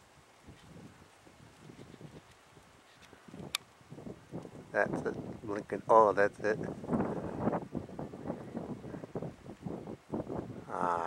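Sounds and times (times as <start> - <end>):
gusty wind on microphone: 0.0 - 11.0.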